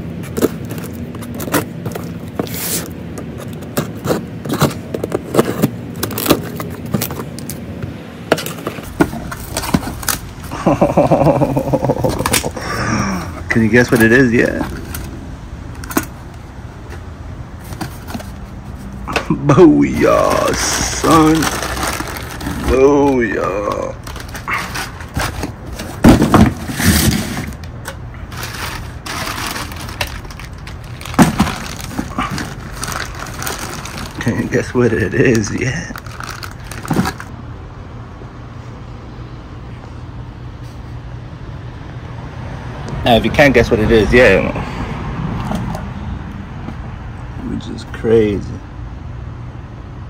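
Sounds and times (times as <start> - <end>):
plastic bag crinkling: 19.9 - 26.1, 28.3 - 34.7, 35.3 - 37.3
light paper rustles: 20.2 - 27.6.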